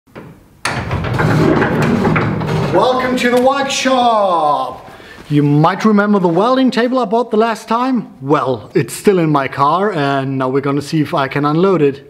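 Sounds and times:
wooden door being pushed open: 0.1s - 3.4s.

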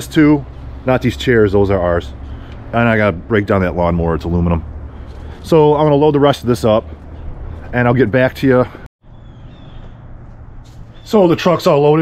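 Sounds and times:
faint high bird chirps: 9.0s - 11.4s.

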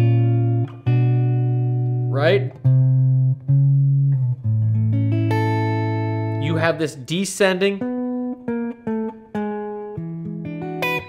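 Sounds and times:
clean electric guitar notes: 0.0s - 7.1s.

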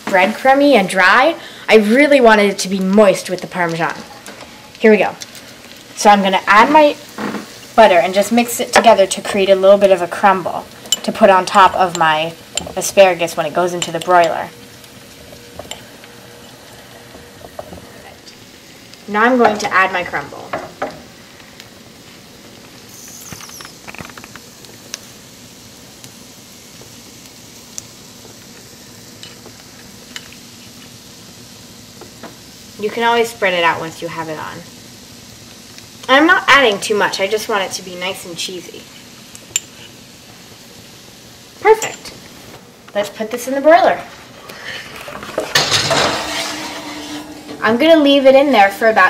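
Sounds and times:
vegetables sizzling in a skillet: 0.0s - 49.0s
loud clanking metal scrape: 45.1s - 48.4s
metal skillet clattering: 45.1s - 48.4s.

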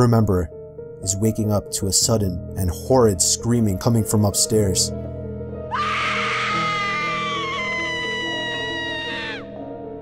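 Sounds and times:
background music: 0.0s - 10.0s
woman screaming: 5.7s - 9.5s.

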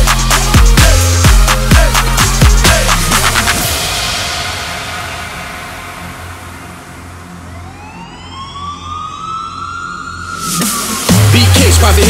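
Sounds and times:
low bass notes: 0.0s - 4.2s
noise sweep: 0.0s - 8.5s
siren-like synth riser: 3.0s - 12.0s.

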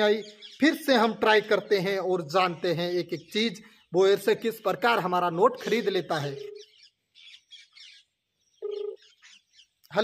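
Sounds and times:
birds chirping faintly: 0.0s - 10.0s
phone beep: 6.3s - 6.7s, 8.6s - 9.0s.

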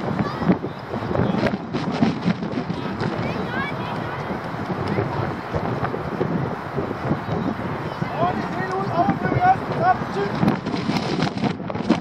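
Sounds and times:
wind noise on microphone: 0.0s - 12.0s
young footballers shouting: 7.6s - 10.4s.

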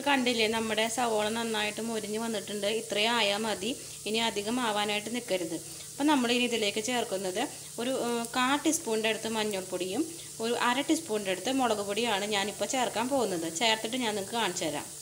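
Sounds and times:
onions sizzling in a frying pan: 0.0s - 15.0s.

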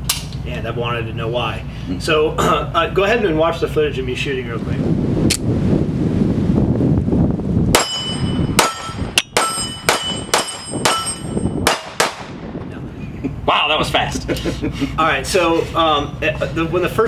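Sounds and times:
wind on microphone: 3.4s - 15.0s
steel targets ringing: 7.8s - 11.9s
pistol shots: 8.6s - 12.4s.

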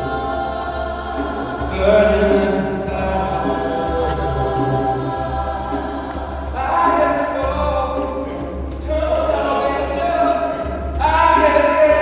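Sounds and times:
choir singing harmonies: 0.0s - 12.0s.

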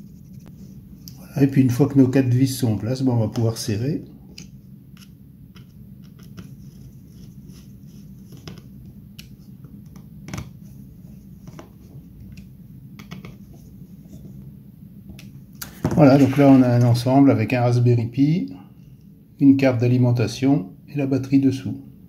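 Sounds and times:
low steady hum: 0.0s - 22.0s.

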